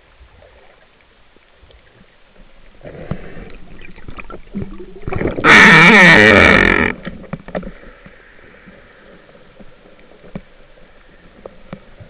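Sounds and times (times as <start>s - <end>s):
faint underwater hiss: 0.0s - 5.3s, 6.4s - 12.0s
underwater rushing: 0.0s - 12.0s.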